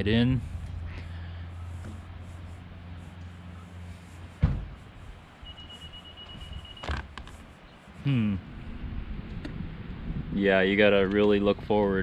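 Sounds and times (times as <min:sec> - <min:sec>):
sharp thump: 0:04.4 - 0:04.8
high steady beep: 0:05.4 - 0:06.8.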